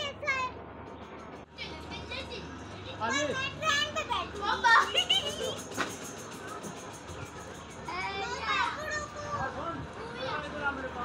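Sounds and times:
children playing: 0:01.5 - 0:11.0.

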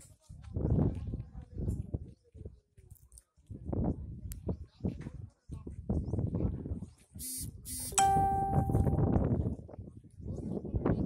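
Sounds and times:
sharp bell-like ding: 0:08.0 - 0:09.1.

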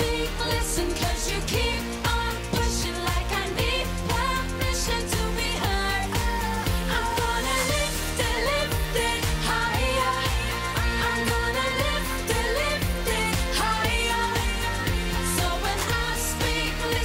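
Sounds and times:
electronic dance-pop backing track: 0:00.0 - 0:17.0
female vocals: 0:00.0 - 0:17.0.

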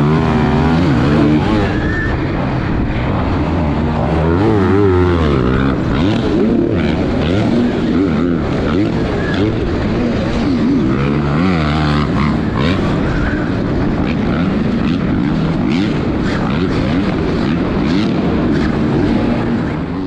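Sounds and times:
dirt bike engines revving: 0:00.0 - 0:20.0.

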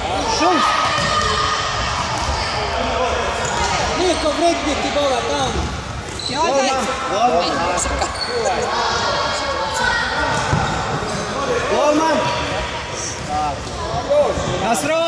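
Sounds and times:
voices echoing in hall: 0:00.0 - 0:15.0.

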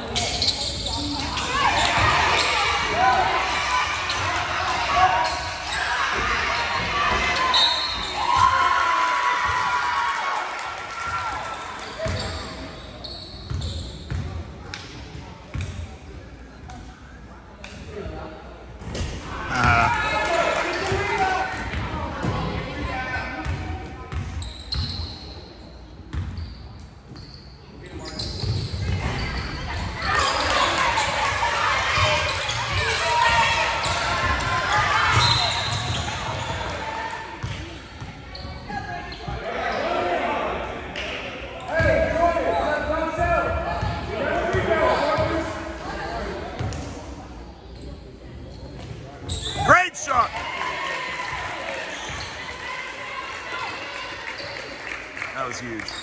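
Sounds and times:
talk of spectators and players: 0:00.0 - 0:56.0.

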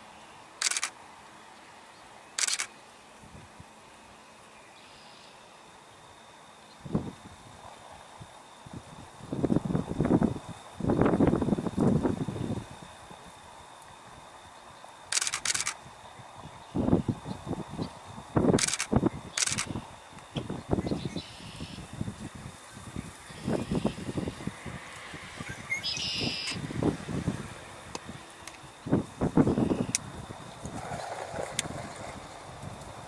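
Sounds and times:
camera shutter rapid clicks: 0:00.6 - 0:01.0, 0:02.4 - 0:02.7, 0:15.1 - 0:15.8, 0:18.6 - 0:19.8.

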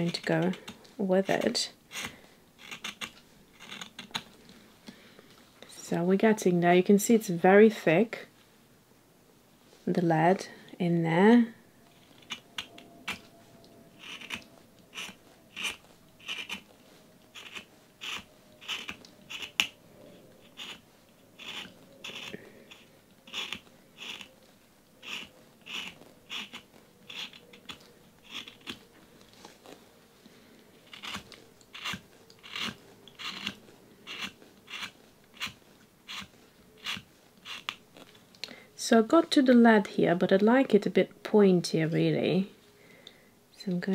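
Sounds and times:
knife shaving pencil wood: 0:00.0 - 0:04.4, 0:11.9 - 0:29.8, 0:30.8 - 0:38.2.

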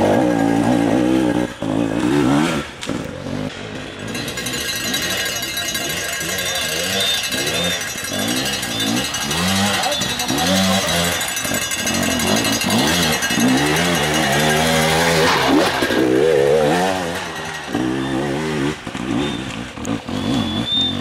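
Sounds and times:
dirt bike engine revving: 0:00.0 - 0:21.0.

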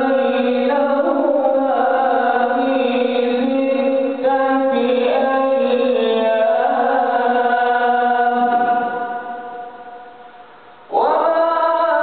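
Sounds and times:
man chanting recitation: 0:00.0 - 0:09.4, 0:10.9 - 0:12.0.

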